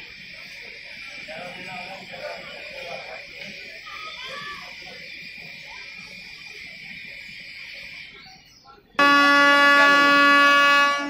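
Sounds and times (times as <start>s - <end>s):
train air horn blast: 9.0s - 11.0s.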